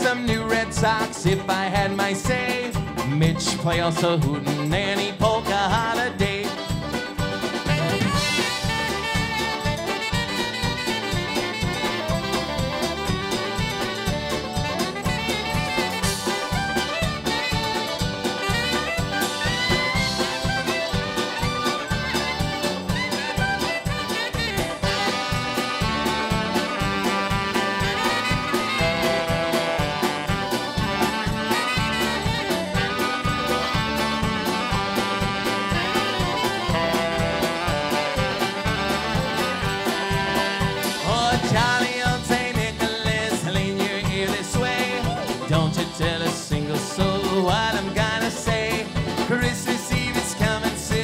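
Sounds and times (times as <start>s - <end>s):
accordion: 0.0s - 51.0s
drums keeping steady beat: 0.0s - 51.0s
saxophones playing tune: 6.3s - 42.1s, 44.6s - 45.6s.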